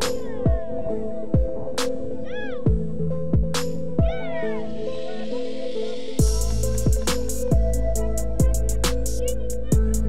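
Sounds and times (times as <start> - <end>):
background music with drum strikes: 2.7 - 4.2, 6.2 - 9.2.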